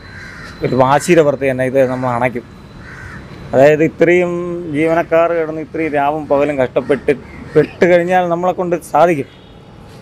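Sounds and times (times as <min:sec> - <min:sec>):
bird calling: 0:00.0 - 0:10.0
man speaking: 0:00.6 - 0:02.5, 0:03.5 - 0:09.4.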